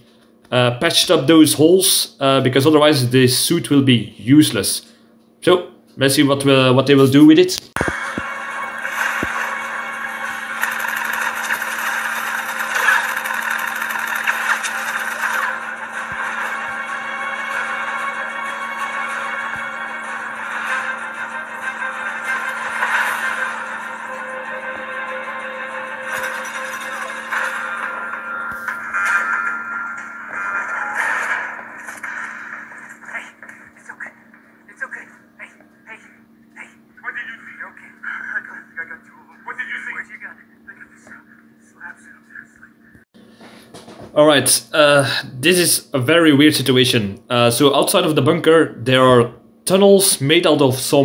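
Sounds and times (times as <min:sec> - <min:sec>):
drone-like music from speakers: 0:07.8 - 0:32.8.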